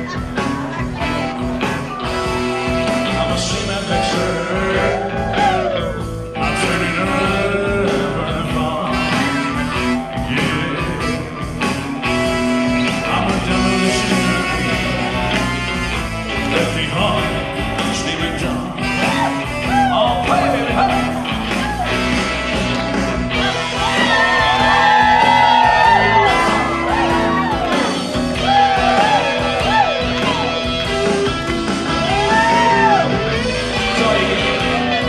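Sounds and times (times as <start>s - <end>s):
live blues-rock music: 0.0s - 35.0s
man singing into a microphone: 2.9s - 11.6s, 12.8s - 15.4s, 16.3s - 21.4s, 33.8s - 35.0s.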